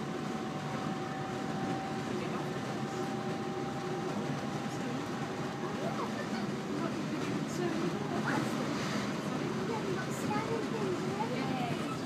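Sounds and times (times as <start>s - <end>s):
high train hum: 0.0s - 12.0s
train wheels rumbling on track: 0.0s - 12.0s.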